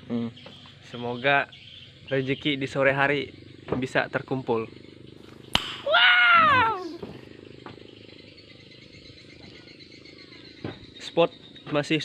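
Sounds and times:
insect chirring: 0.4s - 12.0s
man's drawn-out cry: 5.8s - 7.0s.

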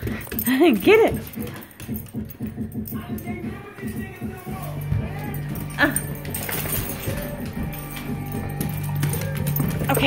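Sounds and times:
dog playing with ball on wood floor: 0.0s - 10.0s.

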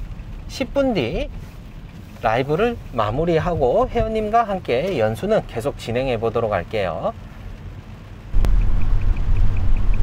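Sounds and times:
tyres and engine rumble: 0.0s - 10.0s.

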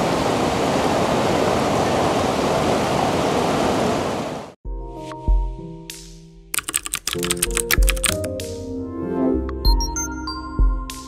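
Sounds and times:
keyboard key clicks: 6.6s - 8.3s.

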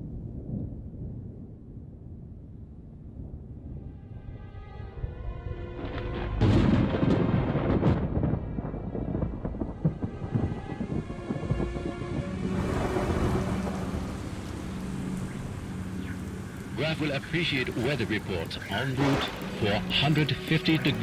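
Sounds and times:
storm wind and rain: 0.0s - 21.0s
thunder rumbling: 0.0s - 21.0s
sharp thunder cracks: 5.8s - 21.0s.

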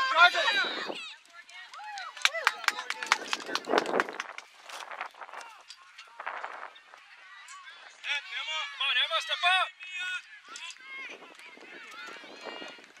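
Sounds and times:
distant shouts of people: 0.0s - 3.3s, 7.1s - 13.0s.

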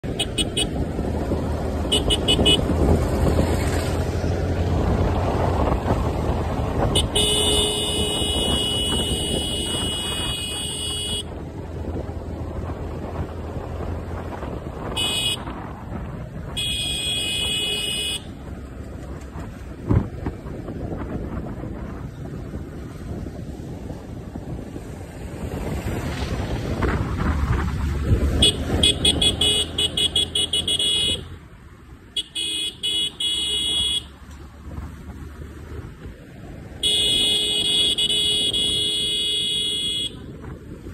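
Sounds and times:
wind noise: 0.0s - 31.4s, 34.6s - 40.9s
motorcycle engine cruising: 0.0s - 40.9s
motorcycle horn: 0.1s - 0.8s, 1.9s - 2.7s, 6.9s - 11.4s, 14.9s - 15.6s, 16.5s - 18.4s, 28.4s - 31.3s, 32.2s - 34.1s, 36.8s - 40.4s.

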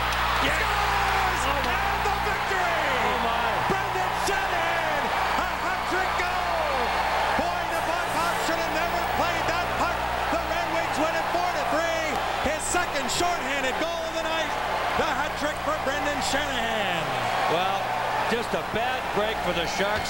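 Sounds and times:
crowd shouting and whooping: 0.0s - 20.0s.

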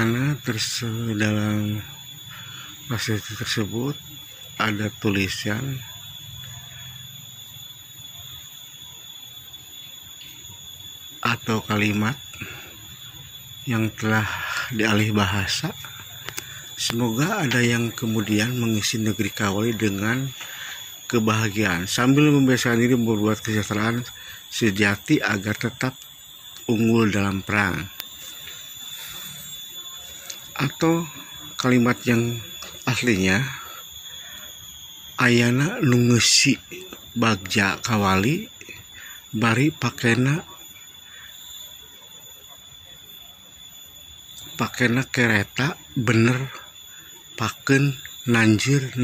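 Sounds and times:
faint hiss: 0.0s - 49.0s
high-pitched whine: 0.0s - 49.0s.

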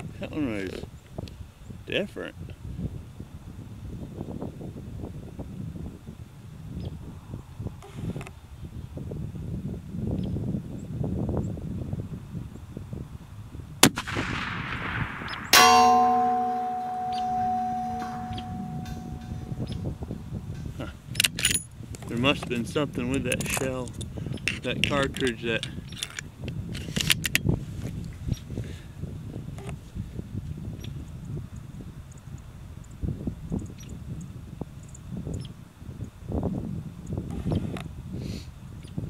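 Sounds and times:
rifle shot: 13.8s - 16.4s
bullet striking steel plate: 15.3s - 20.7s
steel plate ringing: 15.5s - 20.8s.

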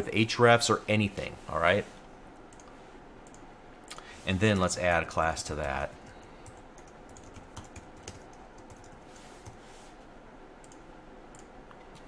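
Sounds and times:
keyboard typing: 5.5s - 9.6s.

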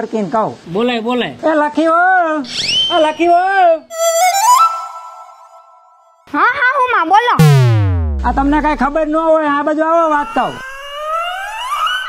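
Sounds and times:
whistle-like tone gliding upward: 3.9s - 6.1s, 10.6s - 12.0s
quick downward swoop: 7.4s - 9.2s.

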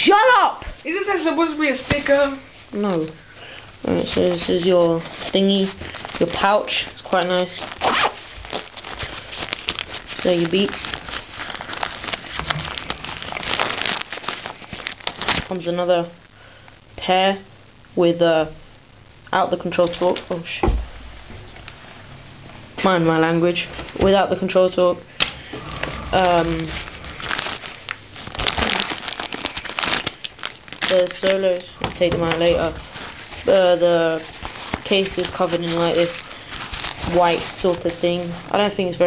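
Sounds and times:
plastic wrapping crinkling: 0.9s - 16.8s, 22.8s - 39.0s.

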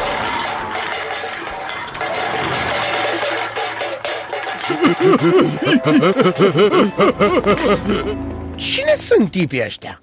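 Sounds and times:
tin cans clattering: 0.0s - 8.0s
cartoon music: 4.7s - 9.1s.

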